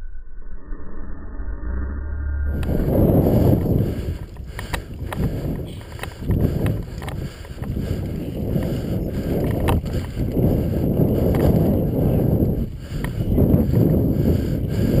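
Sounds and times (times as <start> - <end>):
wind buffeting microphone: 2.5 - 15.0
sharp clicks and knocks: 3.6 - 7.8.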